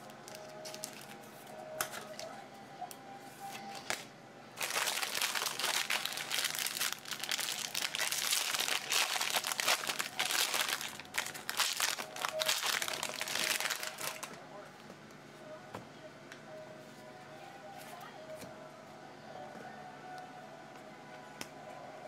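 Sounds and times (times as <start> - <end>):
foil wrapper crinkling: 0.0 - 1.2, 4.6 - 14.4.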